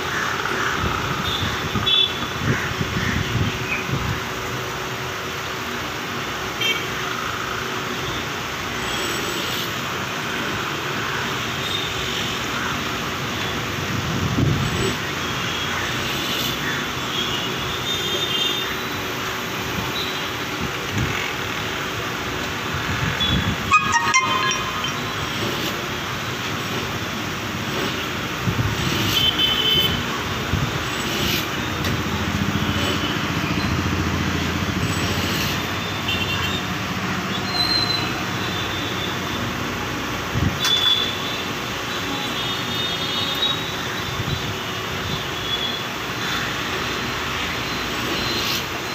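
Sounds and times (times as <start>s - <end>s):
traffic noise: 0.0s - 48.9s
car horn toots: 23.2s - 25.7s.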